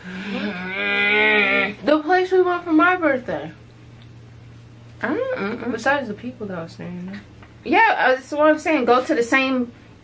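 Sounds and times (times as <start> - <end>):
woman humming mmm: 0.0 - 1.8.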